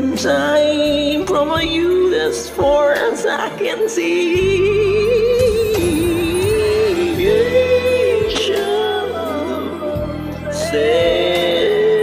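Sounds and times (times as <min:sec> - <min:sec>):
karaoke backing track: 0:00.0 - 0:12.0
person singing with vibrato: 0:00.0 - 0:12.0.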